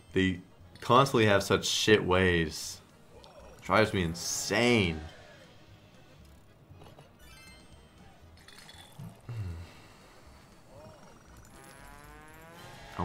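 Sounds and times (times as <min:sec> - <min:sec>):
slot machine chimes: 0:07.2 - 0:09.0
rising run of tones: 0:10.7 - 0:13.0.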